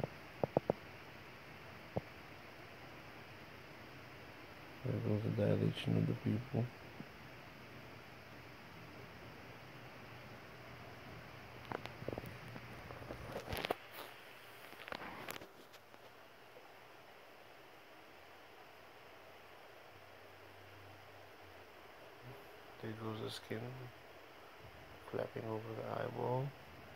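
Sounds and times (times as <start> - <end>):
faint room hum: 0.0 - 26.9.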